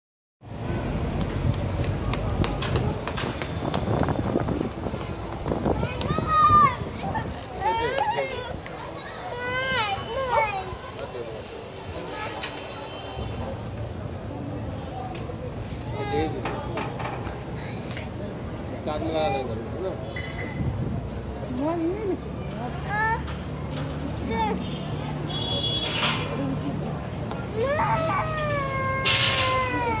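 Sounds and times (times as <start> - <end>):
footsteps on tiled pavement: 0.5 - 9.1
faint murmur of voices: 0.5 - 30.0.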